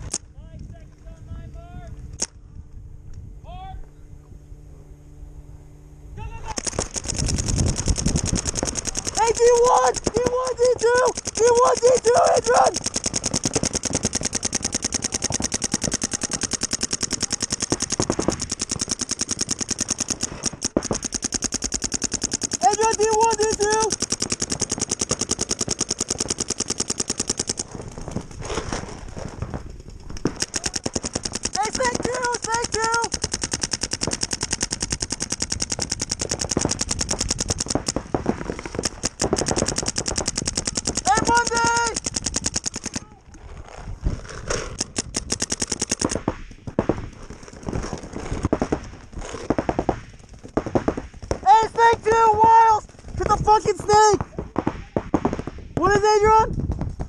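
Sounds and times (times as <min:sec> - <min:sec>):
paintball marker firing rapidly: 0:06.5 - 0:43.2, 0:44.3 - 0:57.0.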